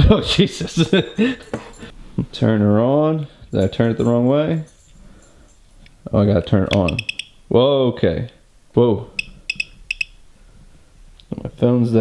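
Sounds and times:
short high beeps: 0:06.8 - 0:07.4, 0:09.2 - 0:10.2.

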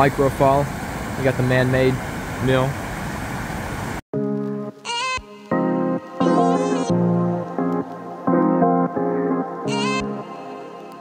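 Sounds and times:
background music with held notes: 0:04.2 - 0:11.0.

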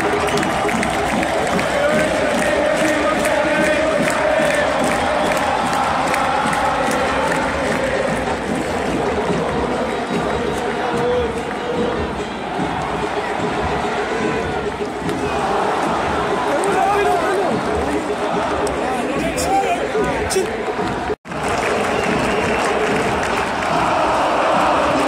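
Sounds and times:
crowd singing a chant: 0:00.0 - 0:25.0
regular beat: 0:00.0 - 0:25.0.

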